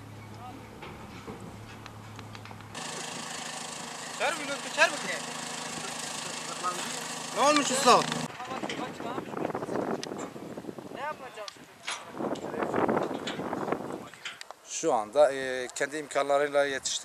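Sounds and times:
tractor engine idling: 0:01.6 - 0:08.3
men's voices: 0:02.8 - 0:10.0.

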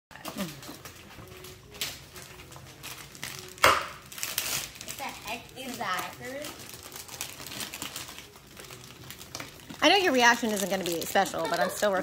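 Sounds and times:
wrapping paper rustling: 0:00.3 - 0:12.0.

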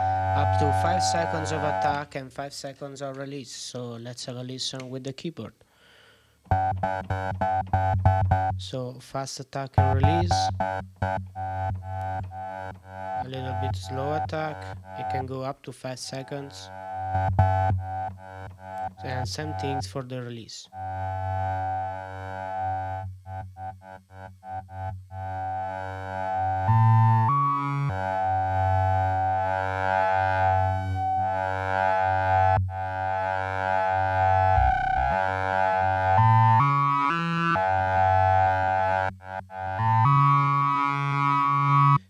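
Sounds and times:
short repeated synth pulses: 0:00.0 - 0:02.0, 0:34.1 - 0:37.6
synthesizer drone notes: 0:00.0 - 0:02.0, 0:09.8 - 0:15.3, 0:16.6 - 0:19.8, 0:20.7 - 0:42.0.

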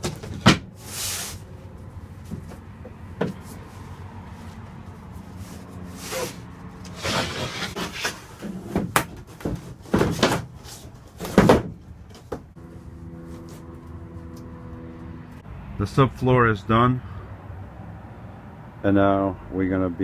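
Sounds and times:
board scraping on floor: 0:05.4 - 0:08.9.

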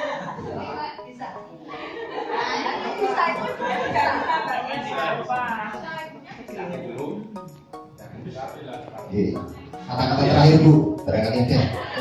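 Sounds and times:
indistinct group chatter: 0:00.0 - 0:12.0.

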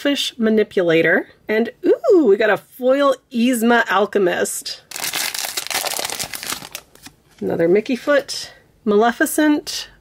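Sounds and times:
foil pack tearing and crinkling: 0:04.9 - 0:07.2.

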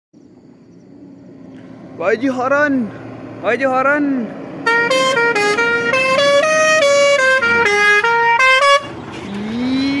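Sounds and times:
truck musical horn tune: 0:04.6 - 0:10.0
rising wail: 0:09.3 - 0:10.0.

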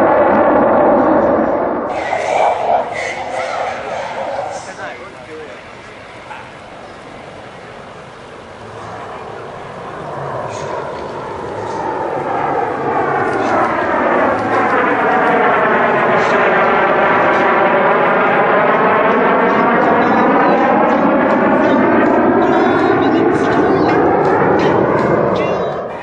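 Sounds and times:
jet hollow whoosh: 0:00.0 - 0:06.3
fighter jet engine roar: 0:00.0 - 0:26.0.

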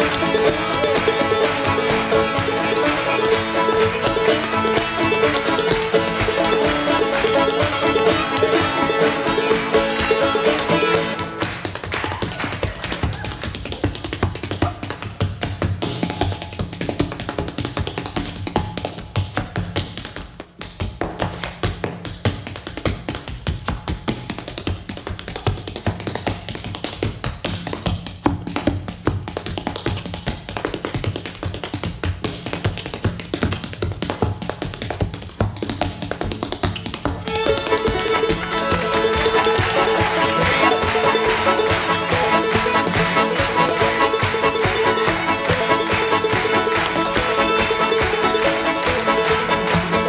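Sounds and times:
step dancing on wooden floor: 0:00.0 - 0:50.0.

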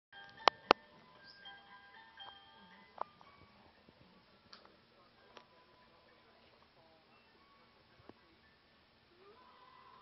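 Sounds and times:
faint chiming tune: 0:00.2 - 0:03.9.

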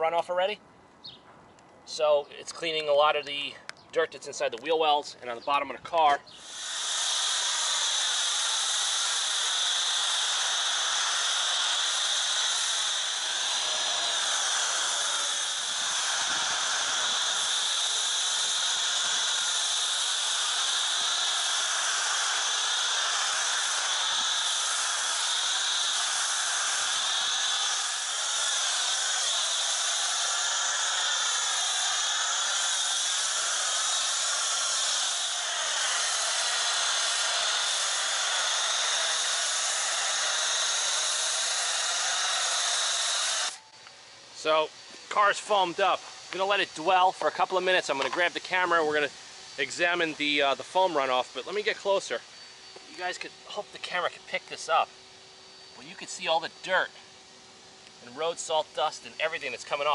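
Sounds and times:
foam cannon spray hissing: 0:06.3 - 0:43.6, 0:44.6 - 0:52.2, 0:58.1 - 0:59.9.

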